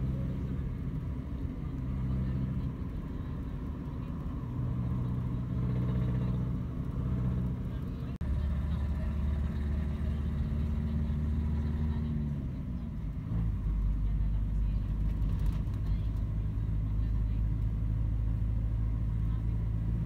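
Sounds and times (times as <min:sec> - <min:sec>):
vehicle engine and road noise: 0:00.0 - 0:20.0.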